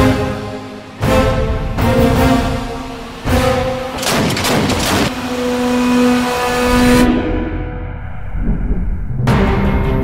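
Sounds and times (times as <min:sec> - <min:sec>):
trailer music with held notes: 0:00.0 - 0:10.0
anti-aircraft gun firing: 0:04.0 - 0:05.2
low rumble: 0:07.4 - 0:09.8.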